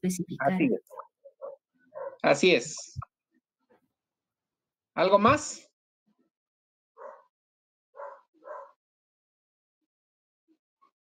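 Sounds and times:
dog barking: 0:00.9 - 0:02.2, 0:07.0 - 0:07.3, 0:08.0 - 0:08.8.

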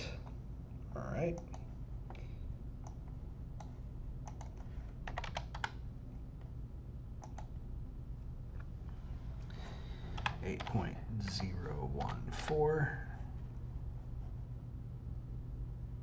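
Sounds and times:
keyboard typing: 0:02.8 - 0:05.8, 0:07.2 - 0:07.5, 0:10.0 - 0:12.8.

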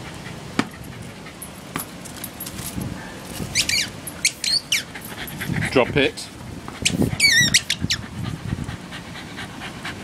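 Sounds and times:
small dog squealing: 0:03.5 - 0:05.0, 0:06.8 - 0:08.0.

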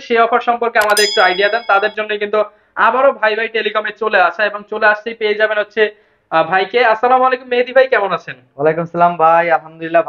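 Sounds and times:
bright bell-like ding: 0:00.8 - 0:02.2.

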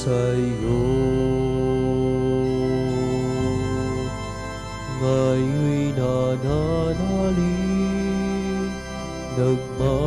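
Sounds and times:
organ sustained chords: 0:00.0 - 0:10.0.

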